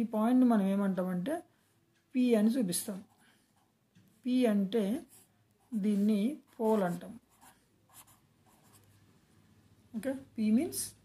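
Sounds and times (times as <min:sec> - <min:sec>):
marker pen writing on paper: 0:05.0 - 0:09.0.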